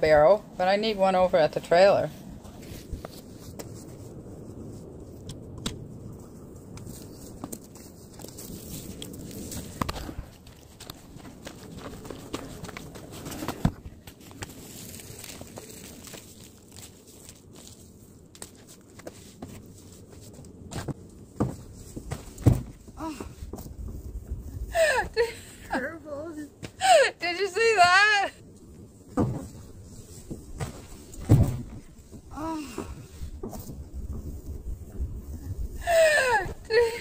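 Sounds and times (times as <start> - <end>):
footsteps on dry ground: 6.8 - 22.7
woman crying out: 24.7 - 25.8, 26.8 - 28.3, 35.8 - 37.0.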